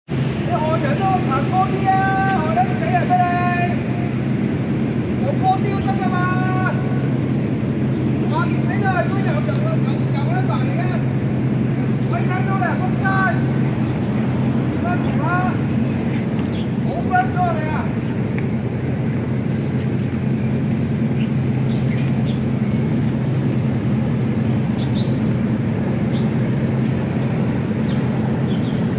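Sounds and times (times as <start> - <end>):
ferry diesel engine droning: 0.1 - 28.9.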